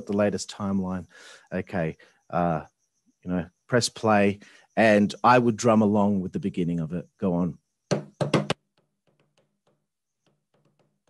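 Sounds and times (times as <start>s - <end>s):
hands drumming on desk: 7.9s - 8.6s.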